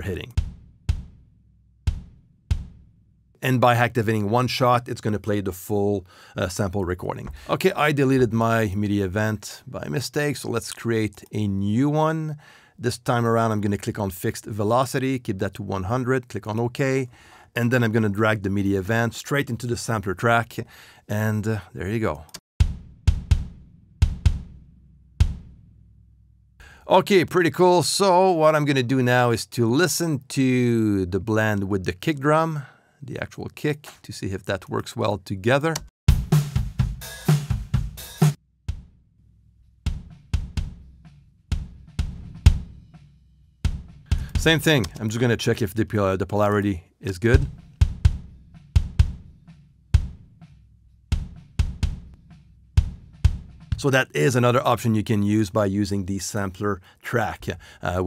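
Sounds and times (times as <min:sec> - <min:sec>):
kick drum hits: 0:00.3 - 0:01.2, 0:01.9 - 0:02.8, 0:22.6 - 0:24.6, 0:25.2 - 0:25.5, 0:39.9 - 0:40.8, 0:41.5 - 0:42.8, 0:43.7 - 0:44.3, 0:47.5 - 0:49.3, 0:51.1 - 0:52.2, 0:52.8 - 0:53.6.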